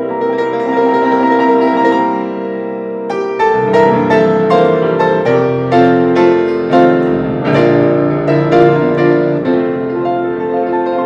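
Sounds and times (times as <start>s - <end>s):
piano duet: 0.0s - 11.0s.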